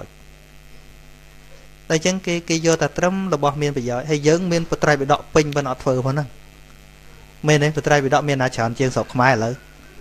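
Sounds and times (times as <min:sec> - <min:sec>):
faint electrical hum: 0:00.0 - 0:10.0
man talking: 0:01.9 - 0:06.4, 0:07.4 - 0:09.7.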